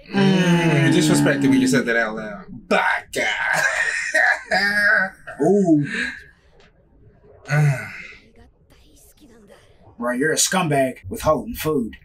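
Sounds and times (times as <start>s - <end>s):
man's strained breathy voice: 0.0s - 2.4s.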